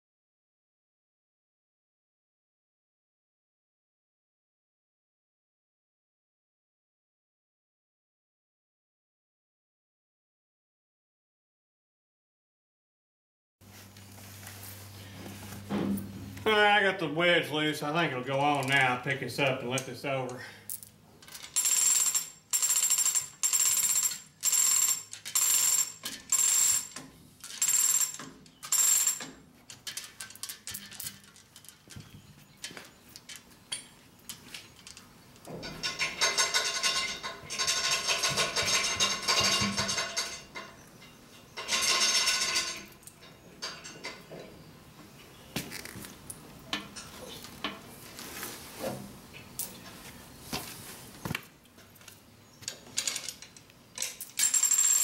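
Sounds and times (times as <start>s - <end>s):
chain hoist clinking: 21.2s - 32.1s, 35.8s - 40.5s, 53.0s - 55.0s.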